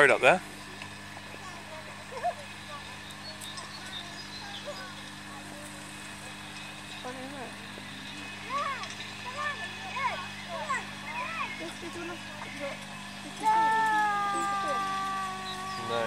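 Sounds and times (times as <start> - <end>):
steady low hum: 0.0 - 16.0
indistinct voices: 1.2 - 16.0.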